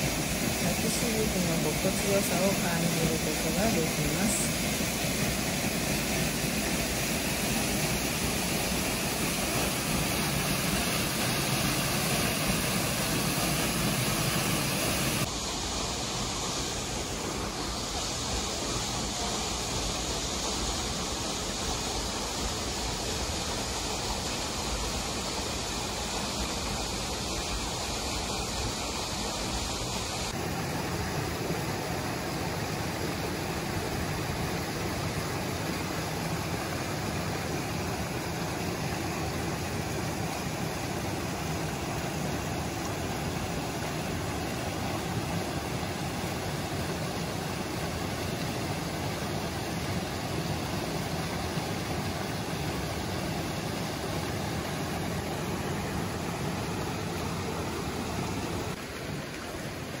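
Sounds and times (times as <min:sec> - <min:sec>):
stream rushing over rocks: 0:00.0 - 1:00.0.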